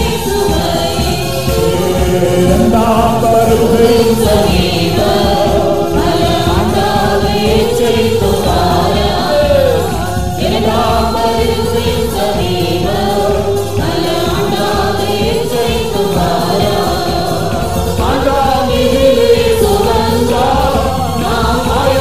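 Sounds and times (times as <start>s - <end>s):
group singing worship song: 0.0s - 22.0s
music with steady low beat: 0.0s - 22.0s.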